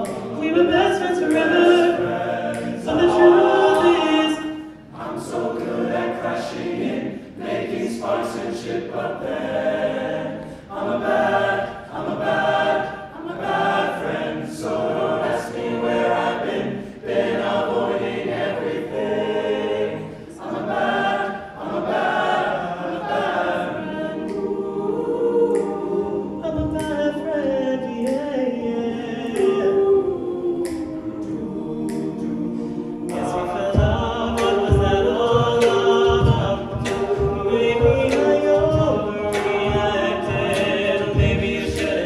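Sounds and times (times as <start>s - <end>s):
solo voice singing: 0.0s - 4.6s
male a cappella group singing: 0.0s - 42.0s
vocal percussion beat: 0.0s - 42.0s.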